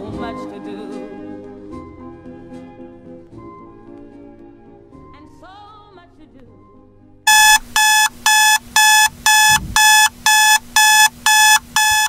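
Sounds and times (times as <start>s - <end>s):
alarm clock beeping: 7.3s - 12.0s.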